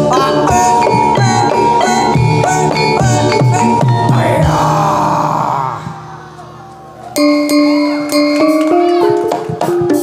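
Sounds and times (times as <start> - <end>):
wavering vocal note: 0.0 - 8.1
metallophones striking ringing notes: 0.0 - 10.0.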